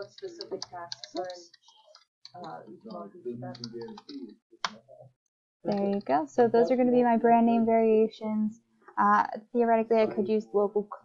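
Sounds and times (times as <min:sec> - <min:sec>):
computer keyboard typing clicks: 0:00.0 - 0:04.8.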